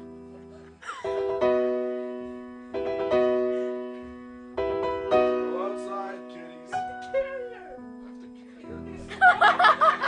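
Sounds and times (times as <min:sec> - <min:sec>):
slow piano chords: 0:00.0 - 0:10.0.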